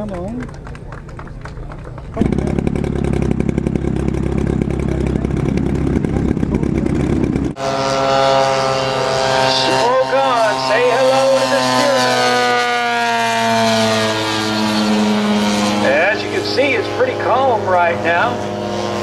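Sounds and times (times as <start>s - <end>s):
model airplane engine running roughly: 1.9s - 19.0s
model plane engine flying past: 7.6s - 19.0s.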